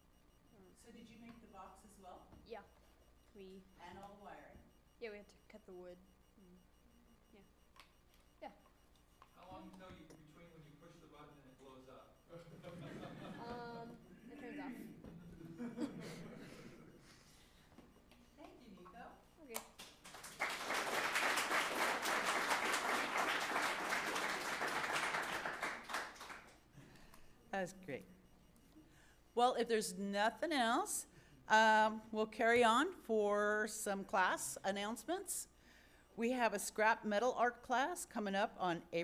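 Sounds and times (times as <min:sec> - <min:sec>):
audience applauding: 0:19.8 - 0:26.6.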